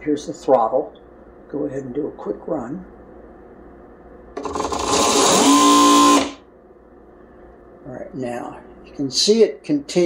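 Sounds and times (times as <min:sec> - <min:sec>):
sewing machine motor whine: 0:04.4 - 0:06.4.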